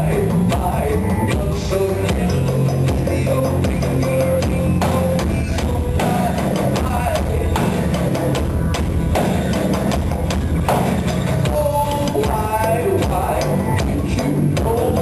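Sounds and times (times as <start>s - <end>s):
clicks and drum beat: 0.0s - 15.0s
deep pulsing bass line: 0.0s - 15.0s.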